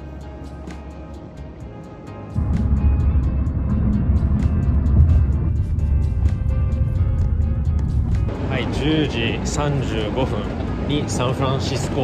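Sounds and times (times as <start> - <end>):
background music with steady beat: 0.0 - 10.0
low rumble of car on road: 2.4 - 12.0.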